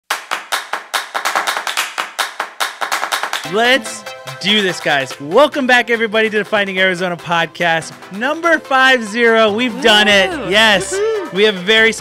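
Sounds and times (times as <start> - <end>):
hand claps: 0.0 - 3.6.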